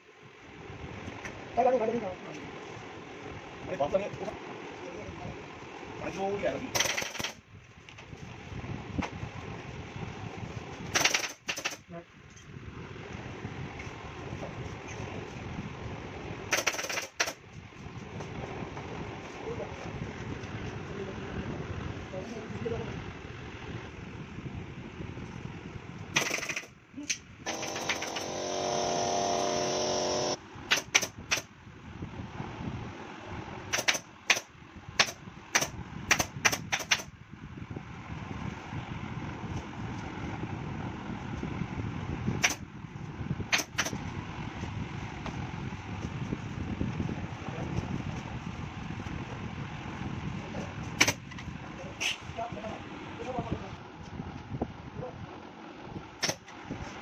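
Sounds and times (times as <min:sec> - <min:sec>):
sharp clicks and knocks: 0:10.9 - 0:11.8, 0:33.7 - 0:37.1
steady buzzing tone: 0:27.5 - 0:30.4.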